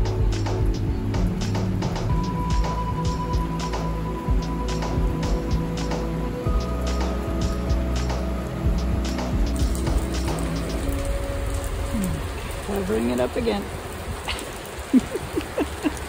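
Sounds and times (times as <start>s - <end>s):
music with long held notes: 0.0s - 13.8s
rain on shelter and pavement: 0.0s - 16.0s
raindrops ticking close: 0.0s - 16.0s.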